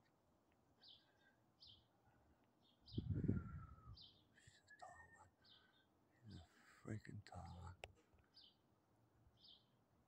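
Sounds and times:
faint whisper: 3.1 - 5.4, 6.2 - 7.9.

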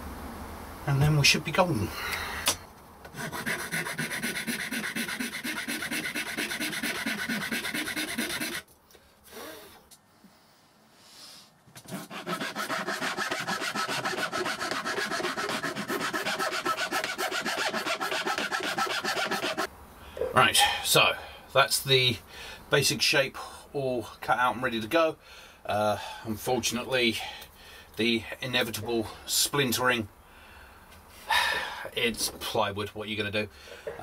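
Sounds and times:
hand file rasping plywood: 3.1 - 8.6, 11.8 - 19.7.

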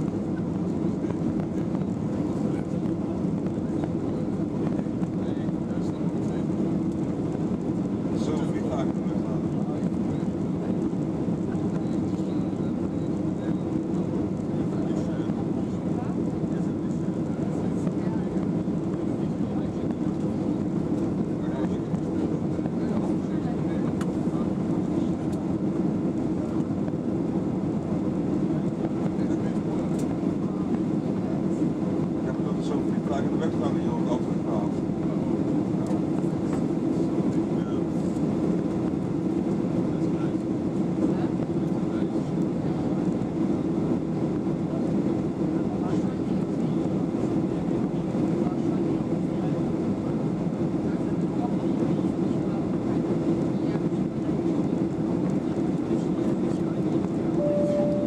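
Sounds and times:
airplane cabin noise: 0.0 - 58.0.

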